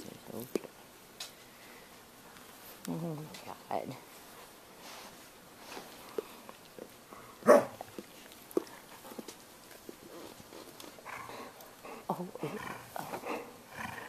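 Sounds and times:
dog growling: 0:11.0 - 0:14.0.

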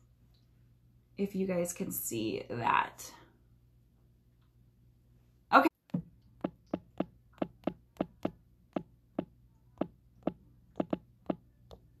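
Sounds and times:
sharp taps on a hard surface: 0:06.4 - 0:08.9, 0:09.8 - 0:11.4.

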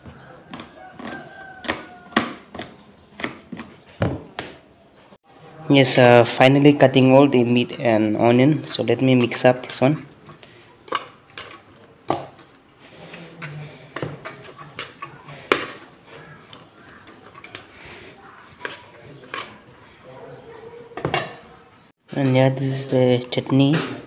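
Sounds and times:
metal spoon scraping pot: 0:06.8 - 0:21.6.

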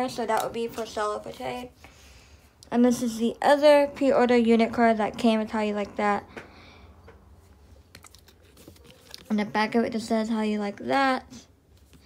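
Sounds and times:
fingers handling stiff paper card: 0:07.9 - 0:09.4.

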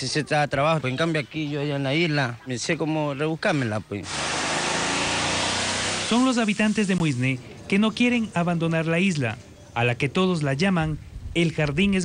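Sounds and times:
loud steady hiss: 0:04.0 - 0:08.1.

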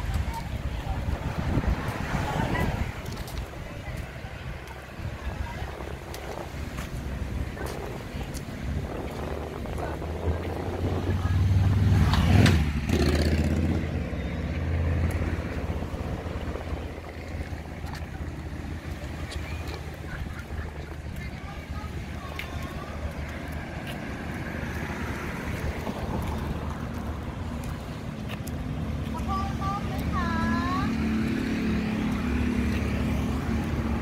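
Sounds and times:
motor vehicle driving past: 0:08.8 - 0:34.0.

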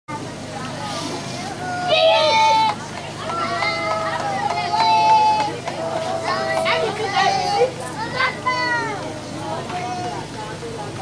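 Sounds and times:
children chattering and calling out: 0:00.1 - 0:11.0.

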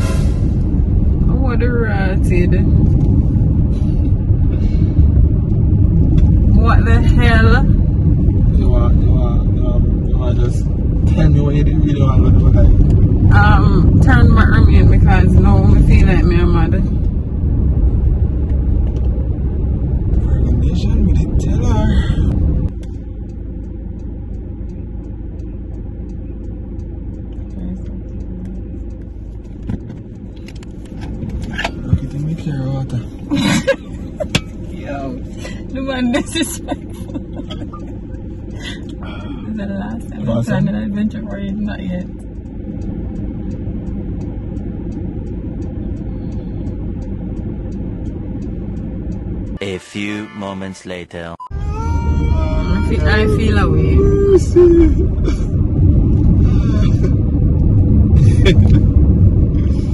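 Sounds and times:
road rumble inside car: 0:00.0 - 0:59.9
indistinct talking: 0:49.6 - 0:55.0.

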